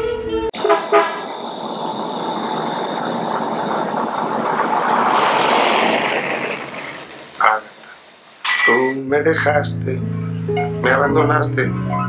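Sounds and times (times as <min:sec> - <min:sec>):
passing vehicle rushing: 0:00.6 - 0:09.6.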